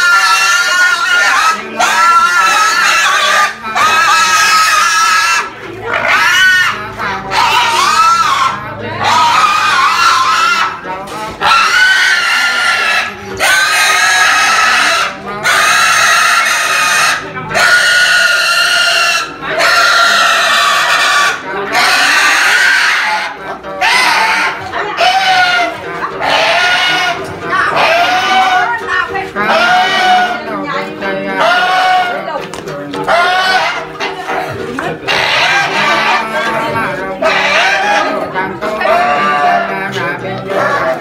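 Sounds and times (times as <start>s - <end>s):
pig squealing: 0.0s - 32.3s, 33.0s - 41.0s.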